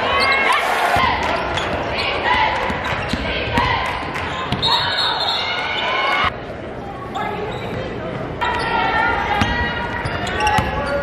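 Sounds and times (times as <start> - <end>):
voices echoing in a gym: 0.0 - 11.0.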